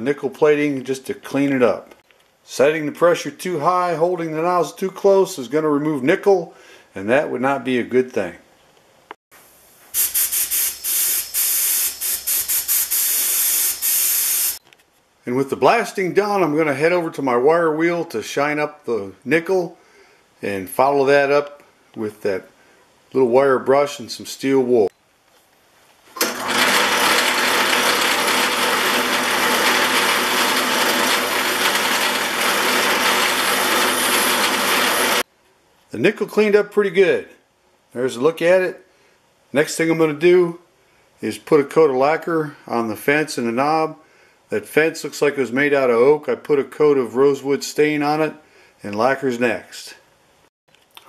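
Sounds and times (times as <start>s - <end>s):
sandblaster hissing in bursts: 9.4s - 14.6s
grinder motor hum: 26.2s - 35.2s.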